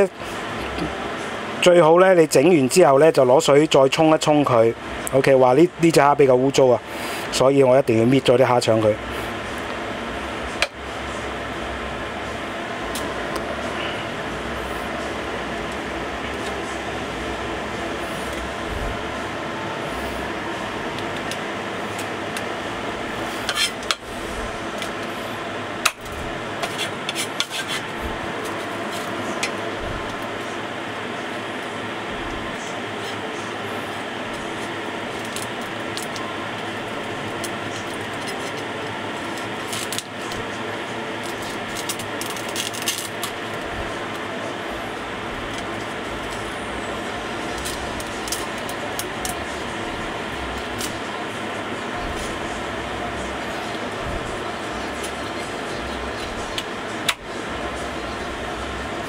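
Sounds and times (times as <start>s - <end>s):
steady mechanical hum: 0.0s - 59.0s.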